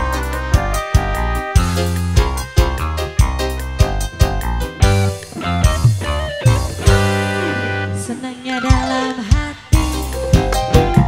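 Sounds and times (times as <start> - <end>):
keyboard and guitar notes: 0.0 - 11.0.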